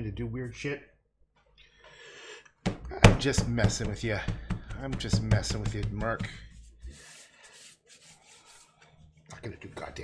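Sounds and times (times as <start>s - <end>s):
paper towel rubbing on painting: 5.0s - 9.1s.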